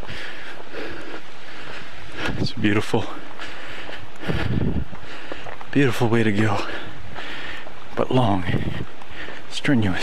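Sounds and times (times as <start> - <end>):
footsteps on pavement: 0.0 - 10.0
rushing wind noise: 0.0 - 10.0.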